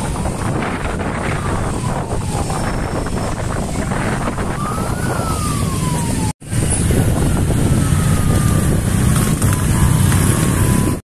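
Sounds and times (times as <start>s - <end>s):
motorcycle engines rumbling: 0.0s - 11.0s
siren wailing: 0.5s - 11.0s.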